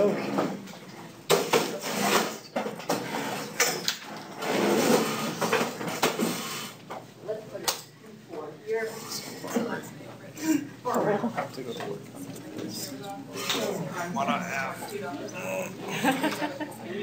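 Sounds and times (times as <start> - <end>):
students talking: 7.2 - 17.0.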